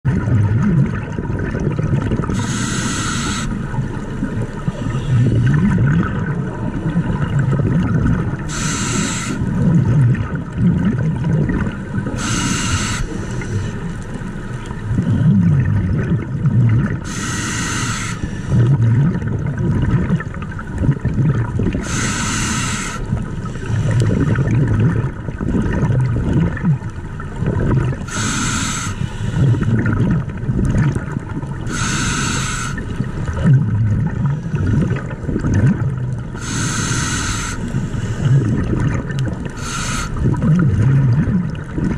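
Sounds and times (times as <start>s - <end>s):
bubbly rumbling: 0.0s - 8.8s, 9.4s - 17.1s, 18.5s - 21.8s, 23.1s - 28.5s, 29.4s - 31.7s, 32.8s - 36.4s, 37.7s - 41.9s
scuba regulator hiss: 2.4s - 3.6s, 8.5s - 9.4s, 12.2s - 13.8s, 17.0s - 18.5s, 21.8s - 24.0s, 28.1s - 29.5s, 31.7s - 32.8s, 36.4s - 38.3s, 39.6s - 40.2s.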